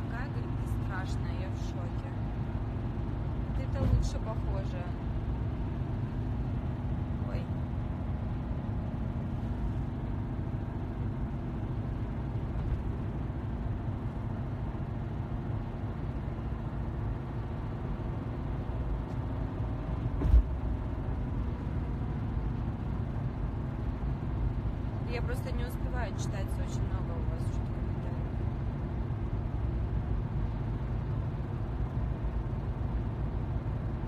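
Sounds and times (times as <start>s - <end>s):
car interior low rumble: 0.0s - 34.0s.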